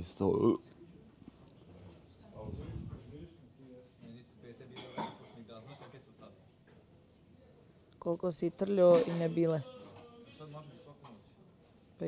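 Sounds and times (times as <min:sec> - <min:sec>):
dishes and cutlery clinking: 0:04.7 - 0:06.0
murmured voices: 0:09.2 - 0:11.6.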